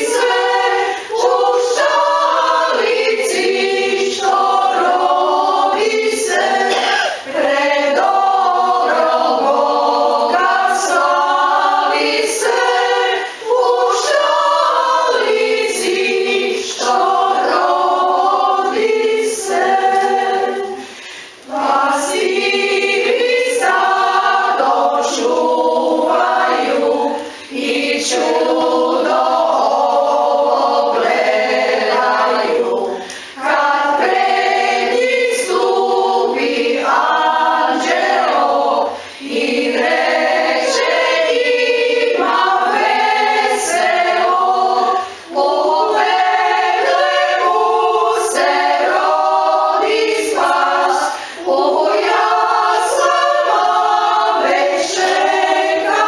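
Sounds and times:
women's choir singing a cappella: 0.0 - 56.0
singers breathing: 0.8 - 1.1, 20.8 - 21.5, 33.0 - 33.4, 38.9 - 39.3, 51.1 - 51.5.

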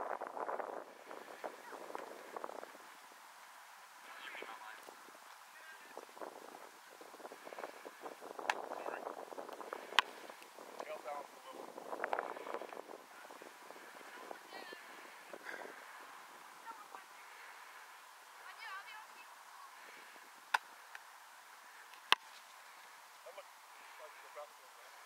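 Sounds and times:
faint outdoor hiss: 0.0 - 25.0.

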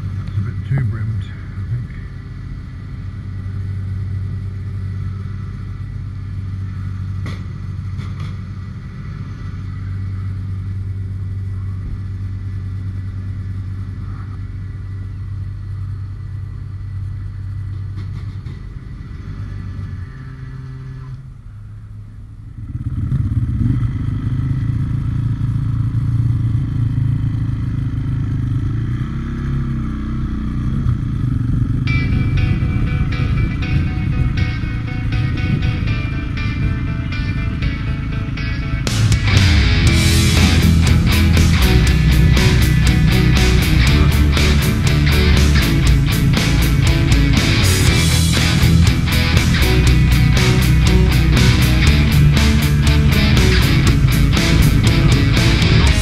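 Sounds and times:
motorcycle engine: 0.0 - 56.0.

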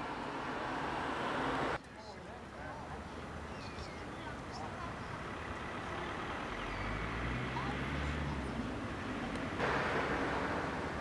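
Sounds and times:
faint distant voices: 0.4 - 10.1
low rumble of passing vehicle: 4.8 - 11.0.

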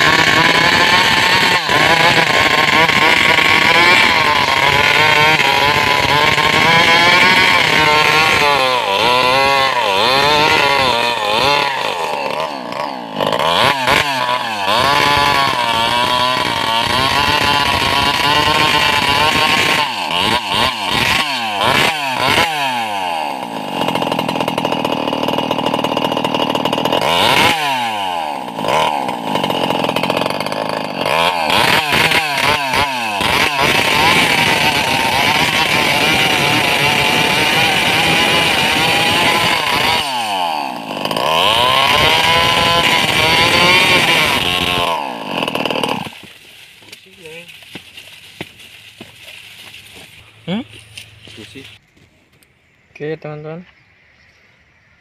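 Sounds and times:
chainsaw engine revving: 0.0 - 51.8.

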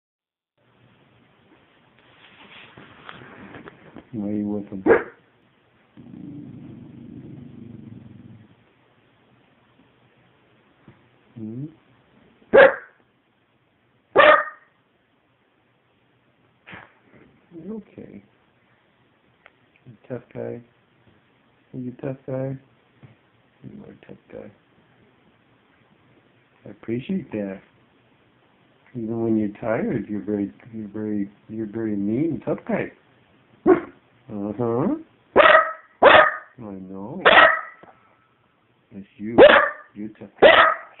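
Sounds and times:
dog barking: 4.8 - 5.2, 12.5 - 13.0, 14.1 - 14.7, 33.7 - 34.0, 35.4 - 36.6, 37.2 - 37.9, 39.4 - 41.0
dog grumbling: 6.0 - 8.6.

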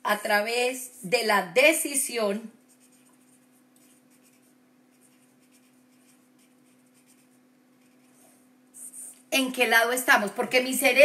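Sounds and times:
faint steady hum: 0.0 - 11.0
scratchy writing strokes: 2.6 - 9.2.

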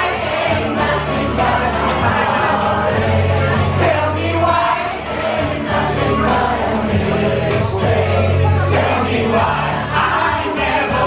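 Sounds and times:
amplified pop backing track: 0.0 - 11.0
crowd singing along: 0.0 - 11.0
men singing into microphones: 0.0 - 11.0.

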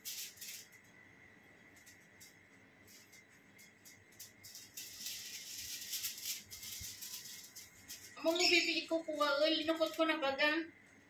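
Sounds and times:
comb rustling through hair: 0.0 - 0.8, 1.8 - 10.1.

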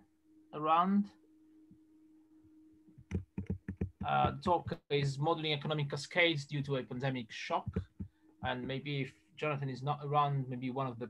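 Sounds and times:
faint steady hum: 0.0 - 11.0
keyboard typing: 3.0 - 4.8, 7.7 - 8.1.

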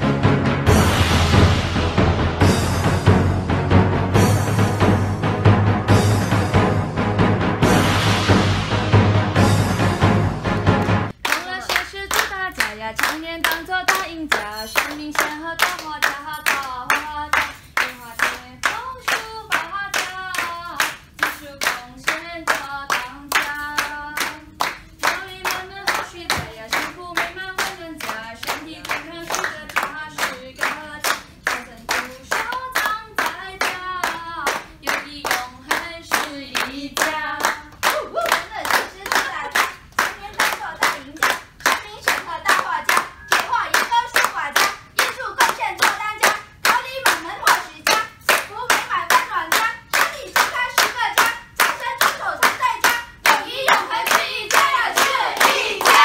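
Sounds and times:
people clapping along: 10.6 - 56.0
group of people singing: 34.0 - 37.7, 49.3 - 56.0.

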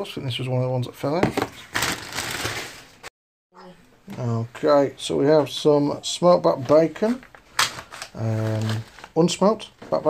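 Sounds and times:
groceries rustling: 1.2 - 3.0, 6.5 - 10.0.

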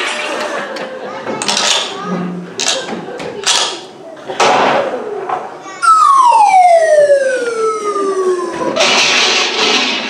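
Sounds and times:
slide whistle downward glide: 5.8 - 8.8.

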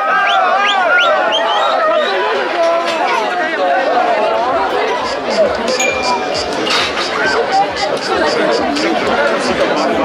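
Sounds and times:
crowd talking and shouting: 0.0 - 10.0.

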